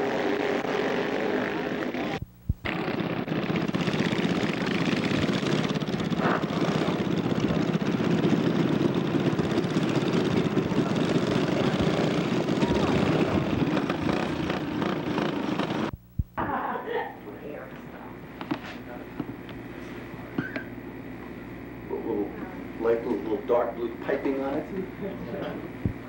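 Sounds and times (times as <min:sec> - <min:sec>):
go-kart engine running: 0:00.0 - 0:15.9, 0:21.8 - 0:26.0.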